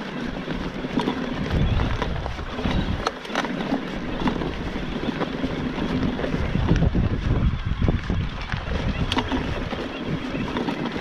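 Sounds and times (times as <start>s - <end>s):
bike rattling: 0.0s - 11.0s
bike tyres crunching on dirt: 0.0s - 11.0s
wind buffeting microphone: 0.0s - 11.0s
bike knocking on stones: 0.8s - 11.0s.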